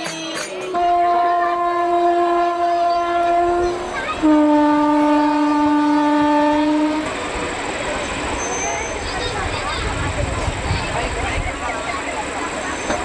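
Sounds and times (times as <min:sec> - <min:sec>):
murmur of voices: 0:00.0 - 0:13.0.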